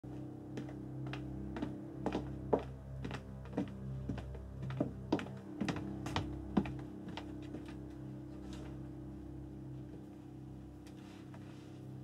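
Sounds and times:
low film score drone: 0.1 - 12.0
footsteps on hard floor: 0.6 - 8.8.

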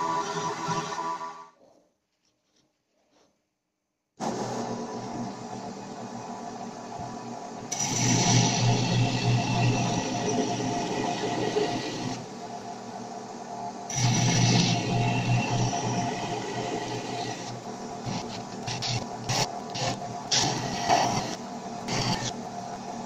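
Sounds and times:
belt grinder running: 13.9 - 22.3.

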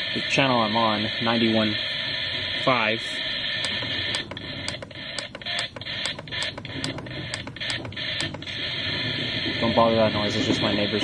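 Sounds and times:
radio static hiss: 0.0 - 11.0.

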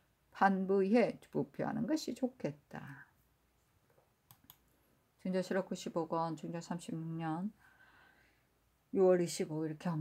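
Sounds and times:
faint clicks: 3.9 - 4.8.

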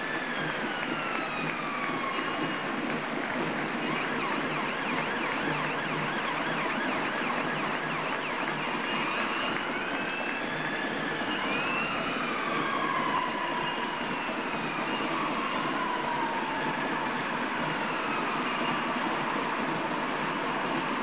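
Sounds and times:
ambulance sirens wailing: 0.0 - 21.0
crowd noise: 0.0 - 21.0.

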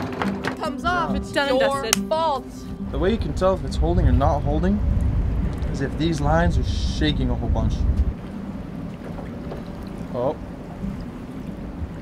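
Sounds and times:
boat engine low rumble: 0.6 - 12.0.

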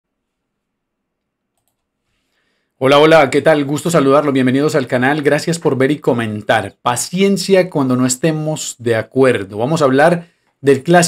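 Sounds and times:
faint clicks: 1.2 - 1.9.

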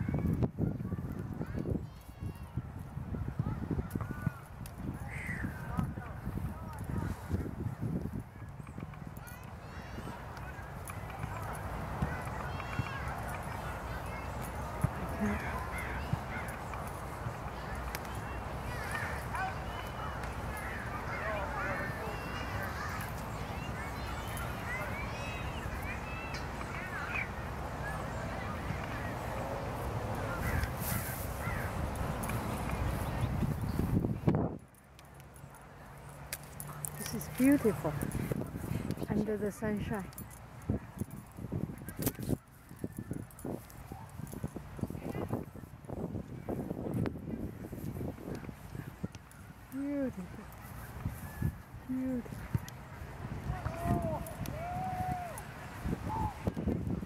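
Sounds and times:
wind buffeting microphone: 0.0 - 34.8, 36.9 - 57.0
faint distant voices: 0.0 - 57.0.

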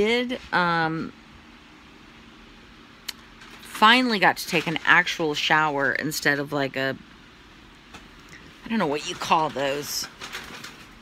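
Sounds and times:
woman speaking: 0.0 - 1.2, 3.6 - 7.0, 8.6 - 10.1
room noise hiss: 0.0 - 11.0.

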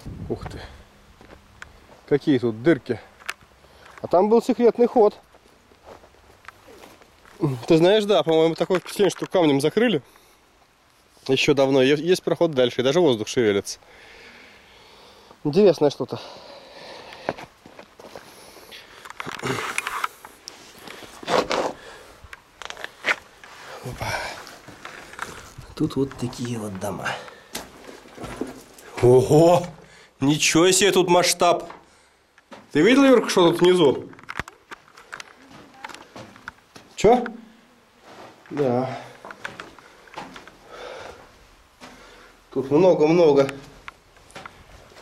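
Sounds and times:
footsteps on rock and gravel: 1.2 - 2.1, 4.9 - 9.6, 17.1 - 29.8, 32.4 - 37.1.

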